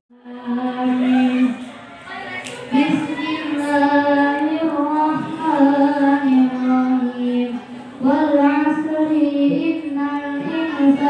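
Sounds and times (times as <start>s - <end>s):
boy chanting melodic recitation: 0.1s - 11.0s.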